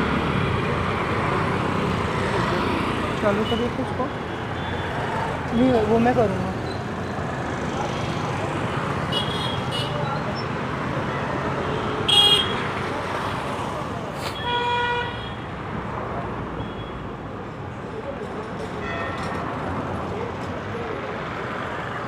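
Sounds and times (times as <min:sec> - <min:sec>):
street traffic noise: 0:00.0 - 0:22.0
vehicle horns honking: 0:11.7 - 0:12.6.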